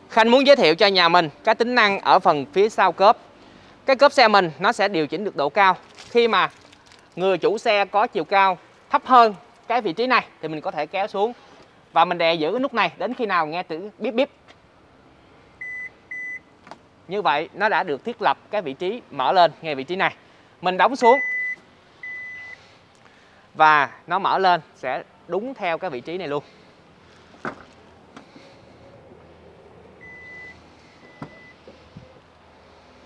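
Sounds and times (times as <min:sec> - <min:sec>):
tailgate short beeps: 0:15.6 - 0:16.5, 0:21.0 - 0:22.6, 0:30.0 - 0:31.7.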